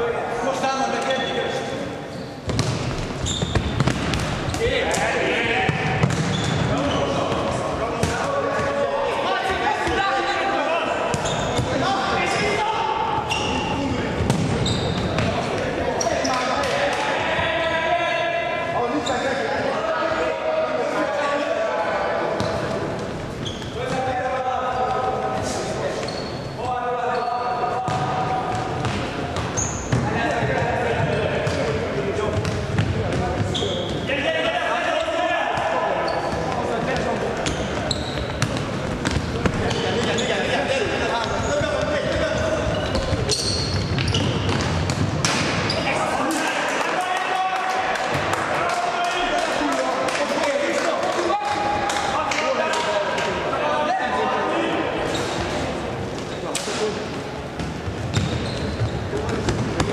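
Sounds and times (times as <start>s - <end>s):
ball bouncing on wooden floor: 2.5s - 4.4s, 5.7s - 6.6s.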